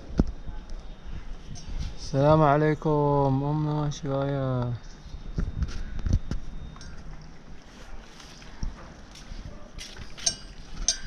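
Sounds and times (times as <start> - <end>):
wind rumble on microphone: 5.0 - 6.8.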